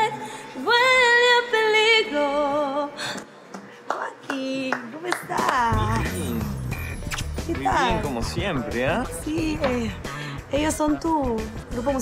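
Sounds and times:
woman singing with vibrato: 0:00.0 - 0:03.0.

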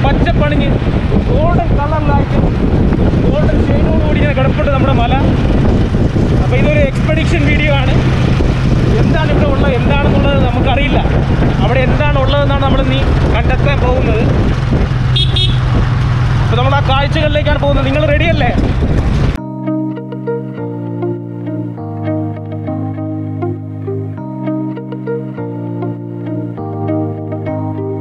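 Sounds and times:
car engine running: 0:02.3 - 0:19.4
people talking: 0:03.3 - 0:05.3, 0:06.4 - 0:08.0, 0:08.9 - 0:14.3, 0:16.5 - 0:18.6.

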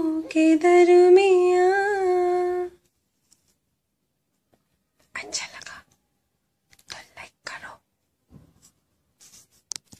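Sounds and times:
woman whispering: 0:05.1 - 0:06.0, 0:06.8 - 0:07.9.

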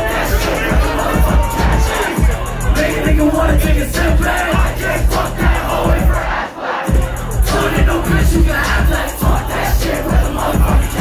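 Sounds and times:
crowd shouting: 0:00.0 - 0:11.0
hip-hop music over pa: 0:00.0 - 0:11.0.

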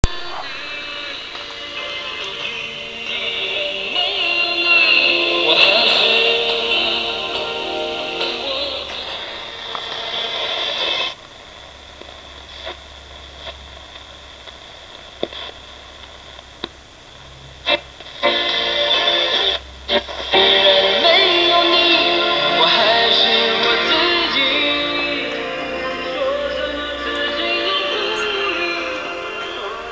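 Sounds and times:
radio tuning clicks and crackles: 0:00.0 - 0:04.2, 0:08.2 - 0:21.4
music from radio speaker: 0:00.0 - 0:29.9.

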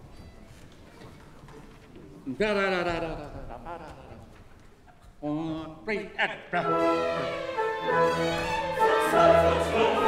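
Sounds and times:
man's voice: 0:02.3 - 0:04.4, 0:05.2 - 0:07.0.

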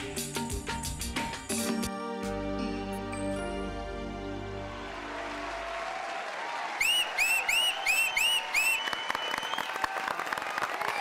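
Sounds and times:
audience applauding and cheering: 0:04.0 - 0:11.0
short rising falling whistles: 0:06.8 - 0:09.8.

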